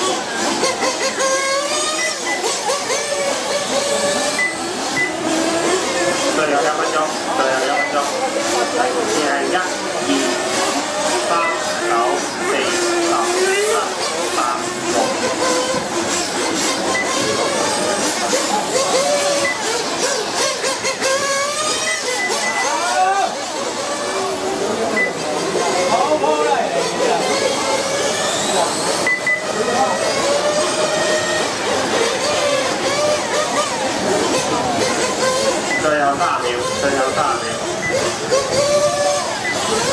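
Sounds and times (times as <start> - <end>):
toy motorcycle motors whining: 0.0 - 39.9.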